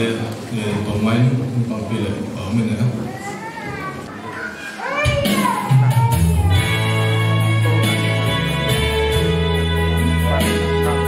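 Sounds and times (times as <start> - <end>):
young child's high voice: 3.0 - 6.5.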